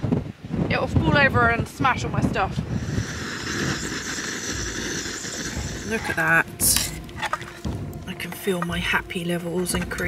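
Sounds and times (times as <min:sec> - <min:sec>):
wind rumbling on microphone: 0:00.0 - 0:10.0
camping stove hissing: 0:02.7 - 0:07.4.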